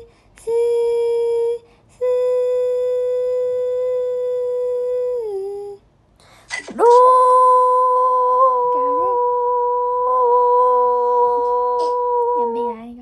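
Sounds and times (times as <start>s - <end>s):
woman humming held notes: 0.0s - 5.8s, 6.8s - 13.0s.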